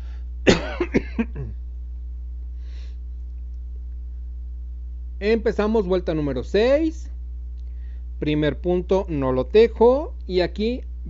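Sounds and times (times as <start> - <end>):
person coughing: 0.5 - 1.6.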